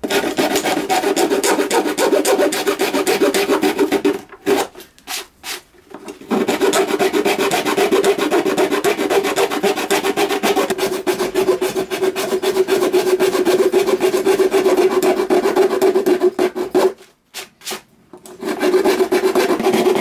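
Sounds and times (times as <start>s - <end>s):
saw blade rasping through fibreglass: 0.1s - 5.6s, 6.3s - 17.8s, 18.4s - 20.0s.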